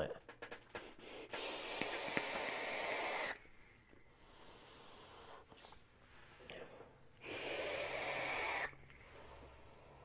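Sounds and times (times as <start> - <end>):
vape coil hissing and sizzling: 1.2 - 3.4, 7.2 - 8.8.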